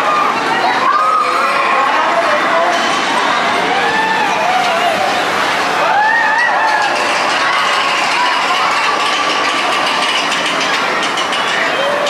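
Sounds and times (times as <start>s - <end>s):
carousel machinery running: 0.0s - 12.0s.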